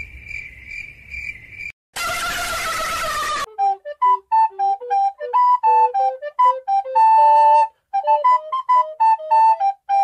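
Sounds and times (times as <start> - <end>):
cricket chirping: 0.0 - 1.7
flute melody: 2.0 - 10.0.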